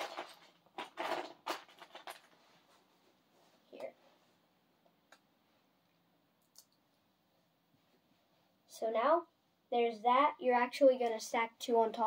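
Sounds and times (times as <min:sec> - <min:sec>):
plastic bricks clattering: 0:00.0 - 0:02.4.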